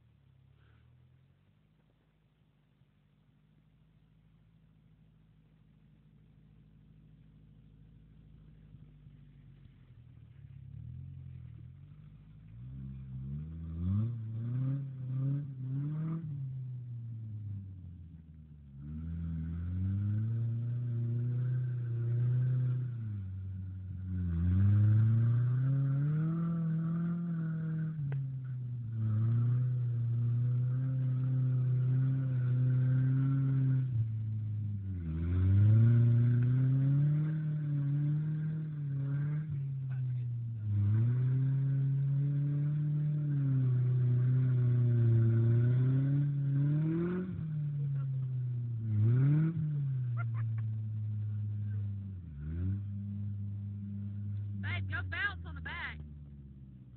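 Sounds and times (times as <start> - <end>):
pickup engine revving: 5.5 - 56.9.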